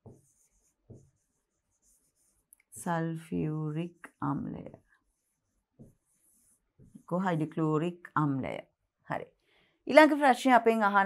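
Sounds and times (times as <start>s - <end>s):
pen scratching on whiteboard: 0.0s - 2.5s, 4.8s - 7.2s.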